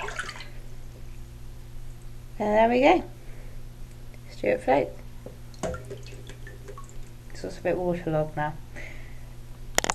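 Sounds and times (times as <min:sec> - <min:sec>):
water splashing in sink: 0:00.0 - 0:00.6, 0:05.5 - 0:07.2
water dripping into sink: 0:05.3 - 0:07.3.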